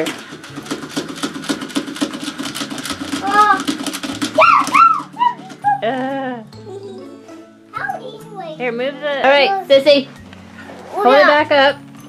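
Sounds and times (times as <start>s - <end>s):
toy motor buzzing and clicking: 0.0s - 5.9s.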